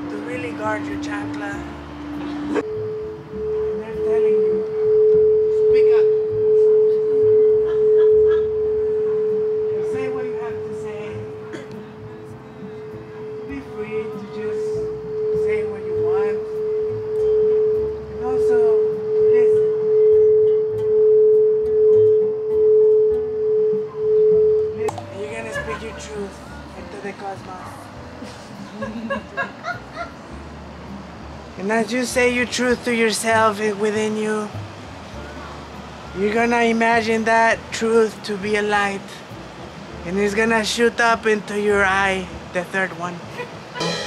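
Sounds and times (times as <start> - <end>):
lower bowl tone: 0.0 - 25.5, 43.8 - 44.0
singing bowl ringing: 2.4 - 11.5, 12.8 - 24.8, 43.8 - 44.0.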